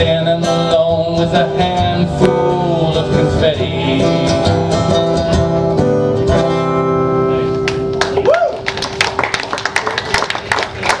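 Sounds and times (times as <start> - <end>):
small audience applauding: 7.6 - 11.0.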